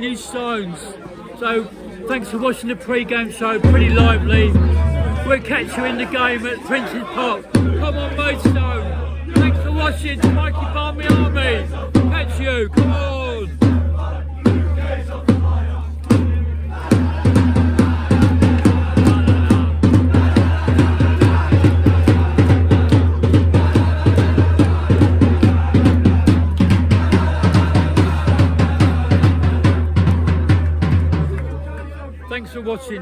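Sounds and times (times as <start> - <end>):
fans' voices: 0.0 - 33.0
bass drum beating: 3.6 - 5.8, 7.5 - 31.4.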